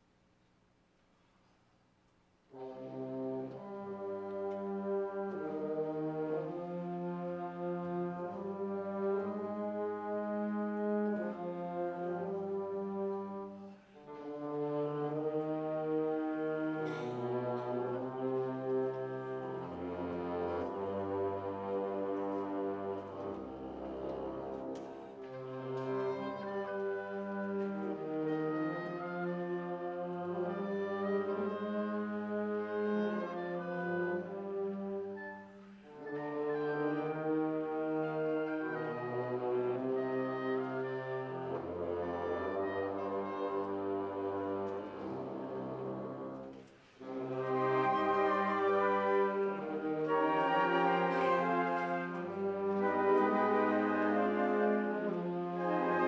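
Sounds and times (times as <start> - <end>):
wind band playing chords: 2.5 - 56.0.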